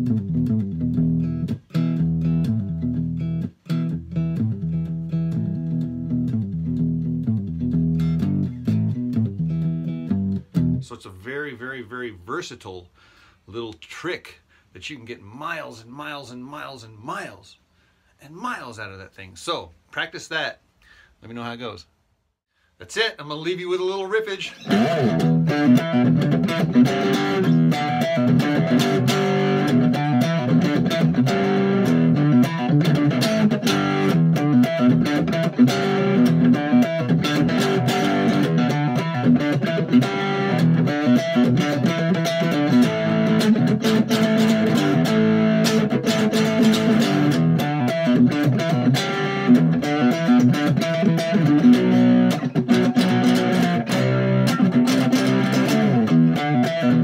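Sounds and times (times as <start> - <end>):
electric guitar fast riff: 24.6 - 57.0.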